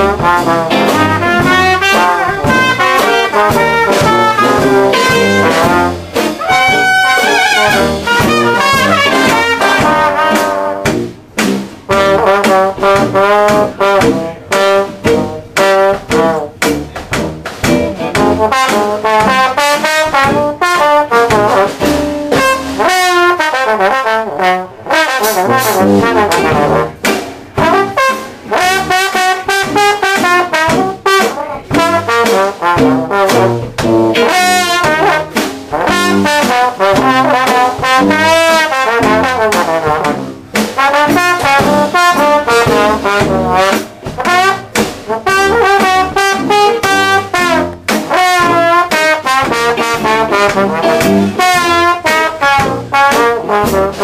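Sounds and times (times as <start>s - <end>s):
jazz rhythm section: 0.0s - 54.0s
trombone solo: 0.0s - 54.0s.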